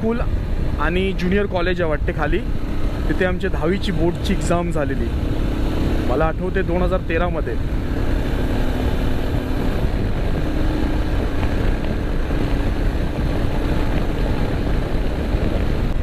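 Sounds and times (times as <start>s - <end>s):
motorcycle engine running: 0.0s - 16.0s
wind rumble on microphone: 0.0s - 16.0s.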